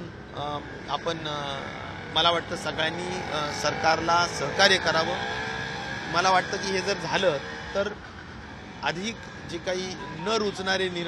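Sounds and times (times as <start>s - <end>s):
man speaking: 0.0s - 5.3s, 6.1s - 8.0s, 8.8s - 11.0s.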